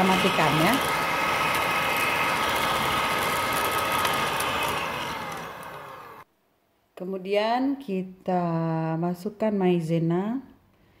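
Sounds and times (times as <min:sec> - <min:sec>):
electric hand mixer whirring: 0:00.0 - 0:06.3.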